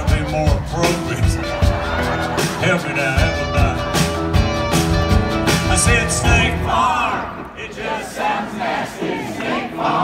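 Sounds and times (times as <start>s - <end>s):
instrumental backing: 0.0s - 7.0s
audience singing and chanting: 5.6s - 10.0s.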